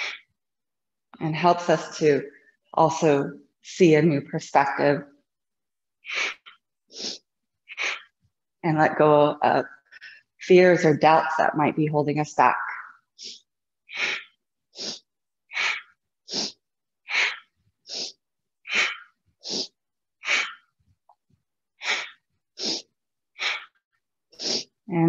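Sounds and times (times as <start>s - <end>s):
woman breathing forcefully: 6.0s - 8.2s, 13.2s - 20.8s, 21.8s - 22.8s, 23.4s - 23.8s.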